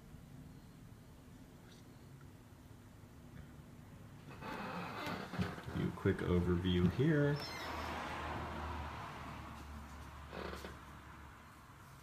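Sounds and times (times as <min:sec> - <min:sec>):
man speaking: 0:05.7 - 0:07.5.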